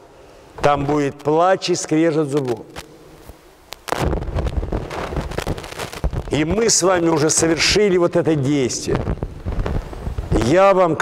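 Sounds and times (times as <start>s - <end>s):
wind buffeting microphone: 9.0s - 10.4s.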